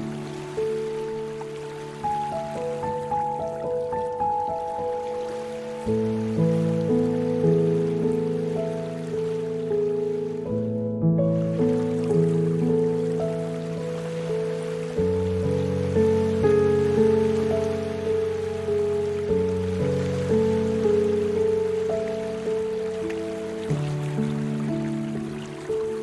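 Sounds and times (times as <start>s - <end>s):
slow calm piano music: 0.0s - 26.0s.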